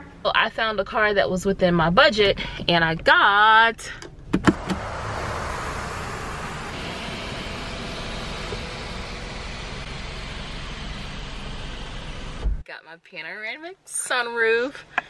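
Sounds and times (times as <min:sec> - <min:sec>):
sunroof motor running: 0:04.5 - 0:12.6.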